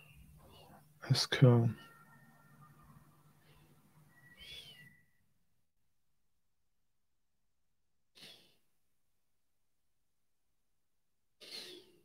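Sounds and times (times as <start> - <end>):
faint whistle-like tone: 1.8 - 5.4.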